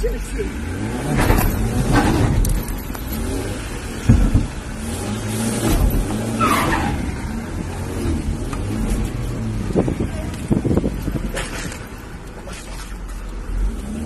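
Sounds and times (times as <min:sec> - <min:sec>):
car engine from inside cabin: 0:00.0 - 0:14.0
thump: 0:04.0 - 0:04.6.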